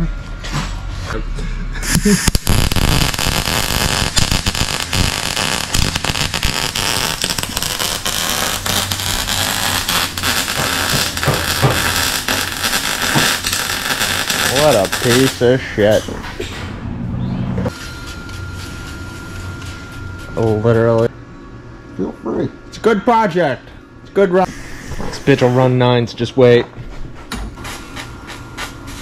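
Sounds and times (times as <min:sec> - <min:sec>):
welder arc crackling: 0:01.8 - 0:15.5.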